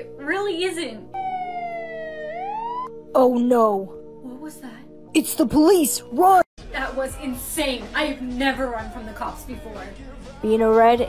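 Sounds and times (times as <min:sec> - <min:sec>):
police siren wailing: 0:01.1 - 0:03.0.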